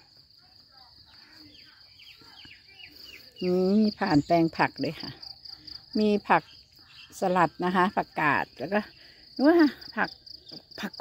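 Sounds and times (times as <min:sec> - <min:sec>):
insects chirping: 0:00.0 - 0:11.0
woman speaking: 0:00.0 - 0:11.0.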